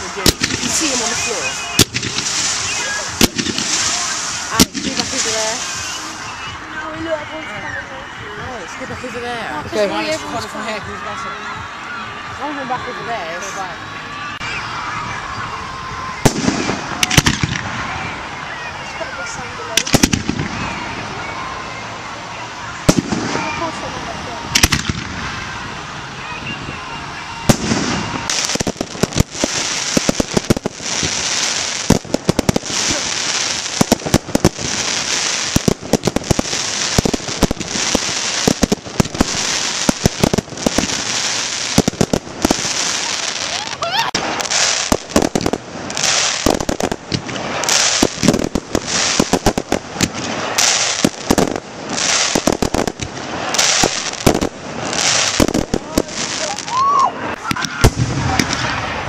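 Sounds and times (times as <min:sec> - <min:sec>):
fireworks bangs: 0:00.0 - 0:22.0, 0:22.6 - 0:59.0
fireworks crackling: 0:00.0 - 0:59.0.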